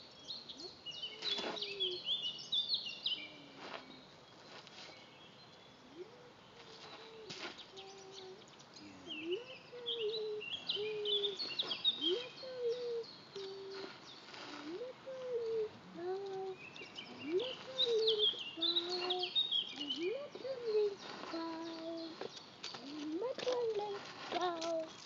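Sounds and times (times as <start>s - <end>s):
songbirds chirping: 0.0s - 25.0s
pigeon cooing: 0.6s - 2.1s, 5.9s - 22.3s.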